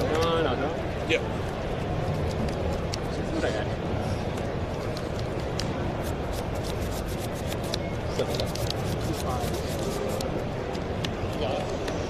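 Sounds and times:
crowd chatter: 0.0s - 12.0s
cards being shuffled: 1.5s - 3.2s, 4.8s - 10.9s.

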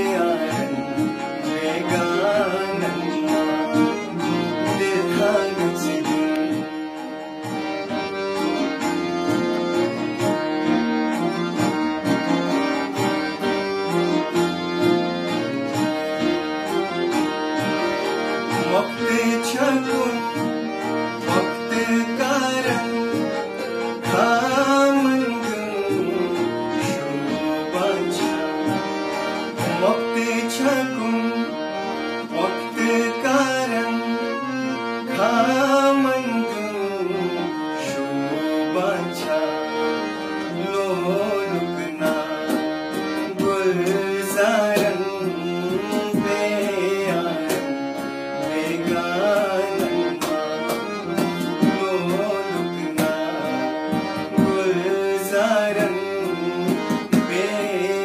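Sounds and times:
man singing: 0.0s - 7.1s, 17.8s - 58.0s
harmonium playing chords: 0.0s - 58.0s.

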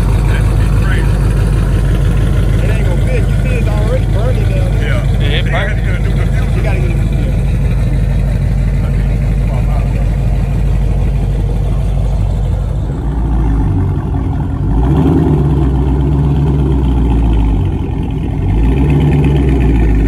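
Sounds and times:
car exhaust idling and revving: 0.0s - 20.0s.

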